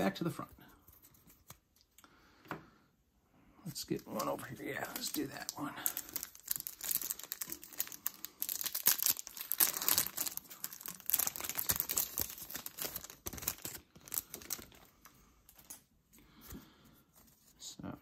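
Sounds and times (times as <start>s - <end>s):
foil wrapper crinkling and tearing: 4.0s - 15.0s.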